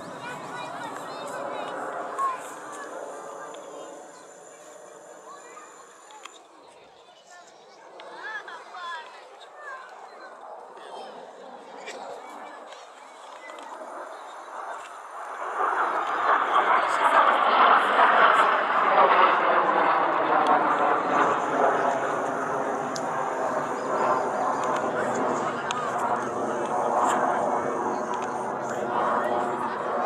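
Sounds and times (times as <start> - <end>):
aircraft engine overhead: 0.0 - 30.0
people talking: 0.0 - 30.0.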